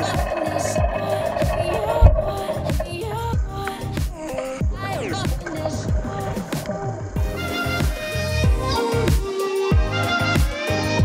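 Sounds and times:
music with deep beat: 0:00.0 - 0:11.0.

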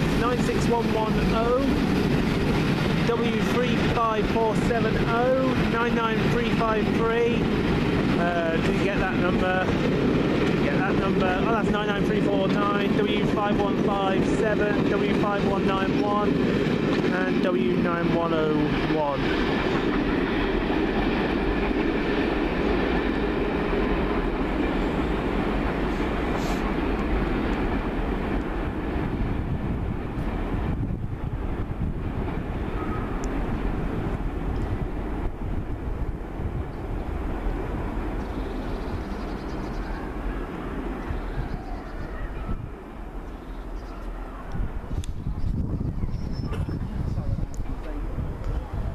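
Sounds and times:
train wheels rumbling on rails: 0:00.0 - 0:48.9.

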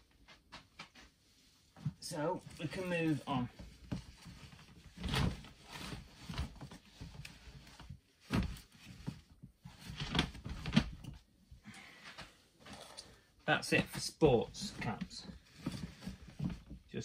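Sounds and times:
rustling in plastic box: 0:02.3 - 0:11.2, 0:14.5 - 0:16.9.

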